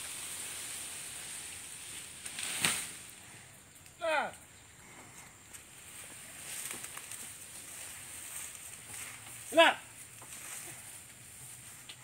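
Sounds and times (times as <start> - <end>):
rustling through grass: 0.0 - 3.9, 4.8 - 12.0.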